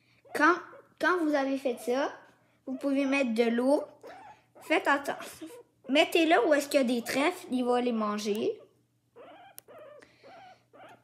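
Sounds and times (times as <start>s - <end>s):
guinea pig calls: 0.2s - 11.0s.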